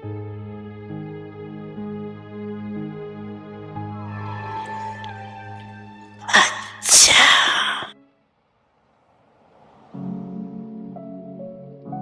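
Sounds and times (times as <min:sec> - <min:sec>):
person sneezing: 0:06.3 - 0:07.9.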